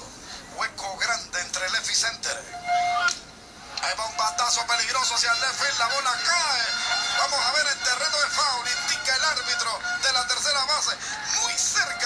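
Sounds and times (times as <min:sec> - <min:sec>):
sports commentator talking on tv: 0:03.8 - 0:12.0.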